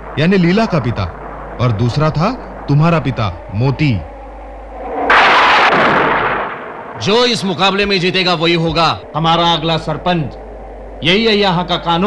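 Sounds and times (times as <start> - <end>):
thunderclap crack and rumble: 4.8 - 7.3.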